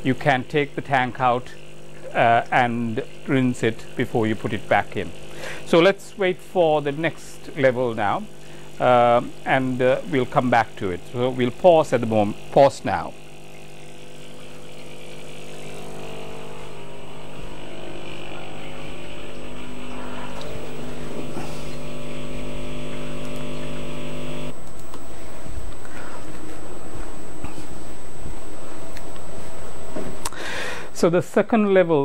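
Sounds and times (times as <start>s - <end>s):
water hissing through machine: 0.0s - 24.5s
water pump buzzing: 0.0s - 31.1s.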